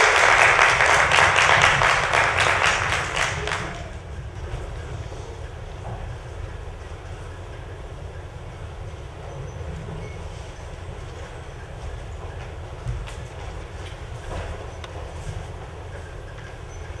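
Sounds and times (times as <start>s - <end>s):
audience applauding: 0.0s - 4.1s.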